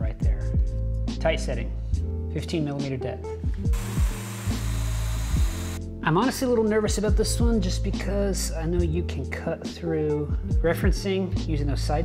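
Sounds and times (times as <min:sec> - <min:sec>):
background music with bass: 0:00.0 - 0:12.0
power joiner cutting wood: 0:03.8 - 0:05.8.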